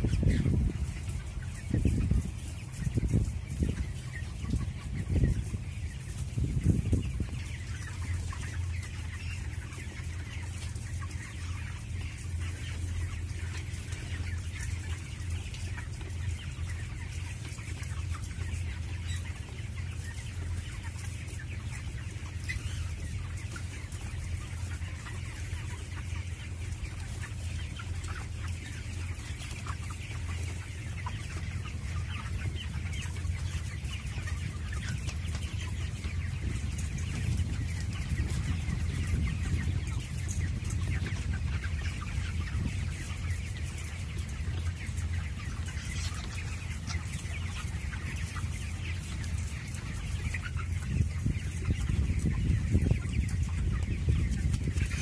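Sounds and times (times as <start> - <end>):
chickens clucking: 0.0 - 55.0.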